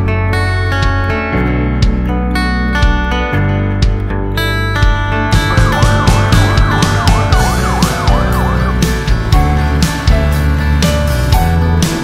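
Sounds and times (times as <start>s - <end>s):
background music: 1.9s - 12.0s
police siren: 5.4s - 9.8s.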